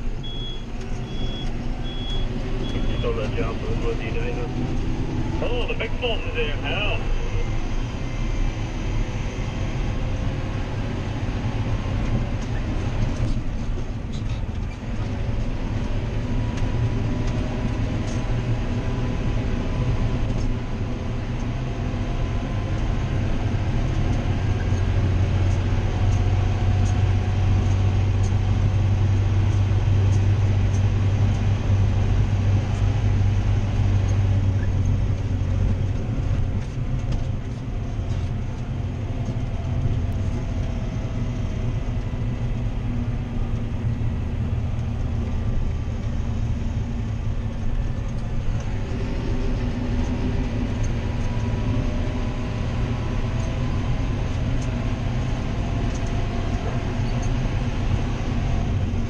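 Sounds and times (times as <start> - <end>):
tractor diesel engine drone: 0.0 - 59.0.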